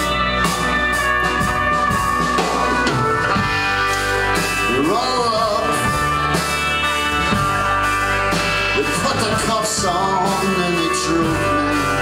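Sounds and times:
live country rock song: 0.0 - 12.0
person singing: 4.3 - 6.6, 8.4 - 12.0.

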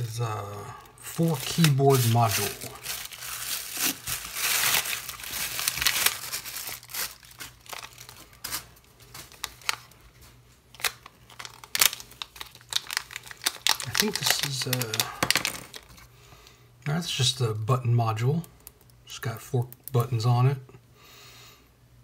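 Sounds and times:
plastic packaging crinkling: 0.5 - 16.1.

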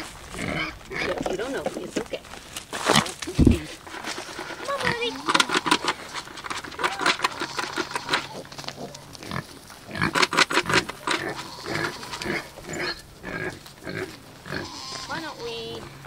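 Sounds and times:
boar grunting: 4.4 - 16.0.

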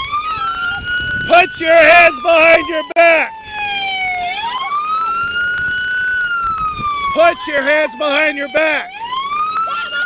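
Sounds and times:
police siren wailing: 0.0 - 10.0.

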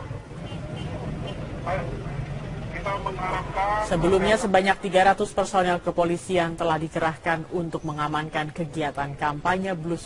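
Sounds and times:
low traffic rumble: 0.0 - 10.0
people talking: 1.6 - 10.0.

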